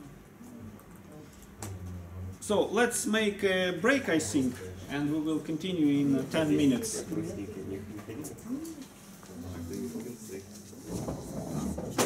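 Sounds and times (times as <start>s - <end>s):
quiet indistinct voices talking: 4.1s - 11.5s.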